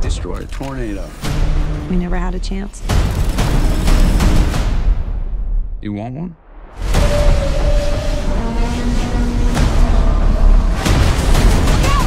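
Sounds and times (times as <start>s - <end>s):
sharp booming hits: 6.4s - 12.0s.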